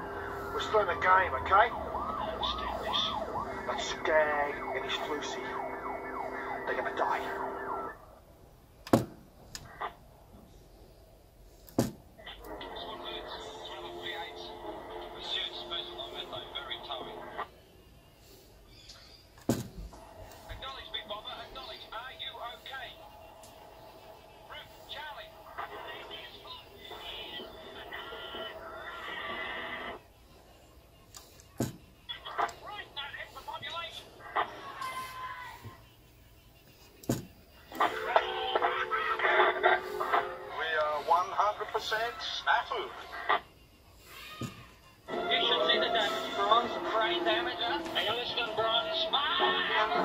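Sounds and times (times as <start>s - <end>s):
radio voice from small speaker: 0.4s - 8.0s, 12.2s - 17.5s, 20.4s - 23.0s, 24.4s - 30.0s, 32.1s - 34.6s, 37.8s - 43.4s, 45.1s - 50.0s
recorded voice through small speaker: 45.2s - 50.0s.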